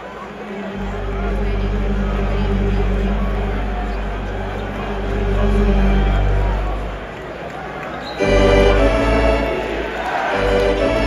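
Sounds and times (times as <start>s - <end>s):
arena organ chord: 0.4s - 7.2s, 8.2s - 11.0s.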